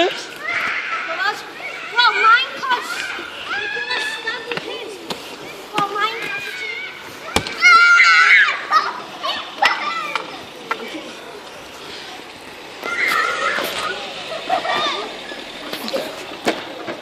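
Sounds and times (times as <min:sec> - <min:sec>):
children shouting and yelling: 0:00.0 - 0:17.0.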